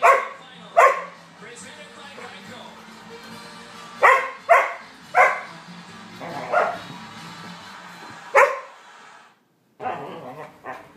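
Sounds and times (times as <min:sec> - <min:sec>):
dogs barking: 0:00.0 - 0:01.2, 0:04.0 - 0:05.6, 0:06.2 - 0:07.0, 0:08.3 - 0:08.8.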